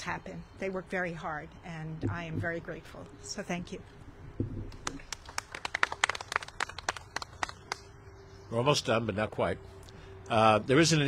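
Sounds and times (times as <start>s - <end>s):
small group applauding: 4.7s - 7.9s.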